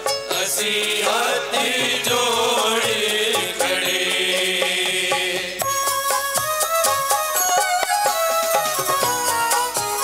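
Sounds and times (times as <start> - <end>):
instrumental melody: 0.0 - 10.0
percussion strikes: 0.0 - 10.0
group singing a chant: 0.3 - 5.7.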